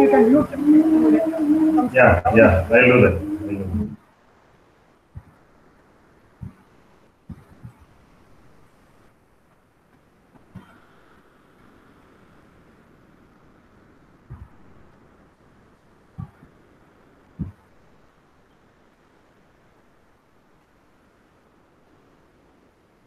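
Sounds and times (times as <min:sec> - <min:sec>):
faint steady hiss: 0:00.0 - 0:23.0.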